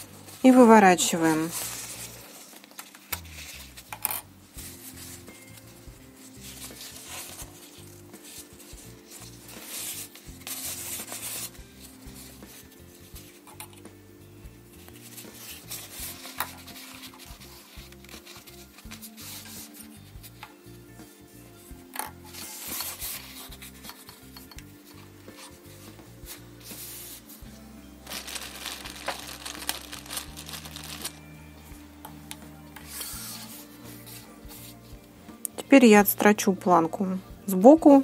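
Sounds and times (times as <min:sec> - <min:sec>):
fabric rustling and rubbing: 0:00.0 - 0:03.9, 0:04.6 - 0:13.4, 0:14.7 - 0:20.4, 0:22.2 - 0:23.9, 0:24.8 - 0:31.3.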